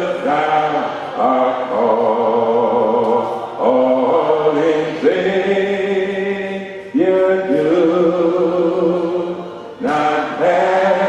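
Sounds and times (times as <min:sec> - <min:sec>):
man singing a hymn: 0:00.0 - 0:11.0.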